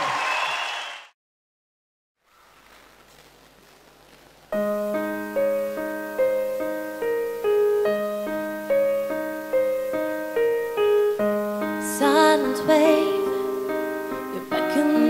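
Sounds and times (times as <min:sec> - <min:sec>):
slow piano ballad: 0:04.5 - 0:15.0.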